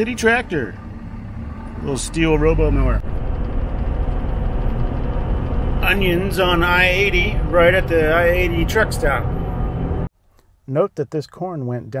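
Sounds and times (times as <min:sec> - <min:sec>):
road noise inside vehicle cab: 0:00.0 - 0:10.1.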